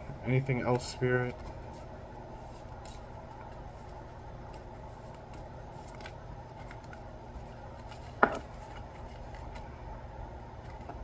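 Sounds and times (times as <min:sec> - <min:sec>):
low room hum: 0:00.0 - 0:11.0
cards being shuffled by hand: 0:00.8 - 0:09.7, 0:10.6 - 0:11.0.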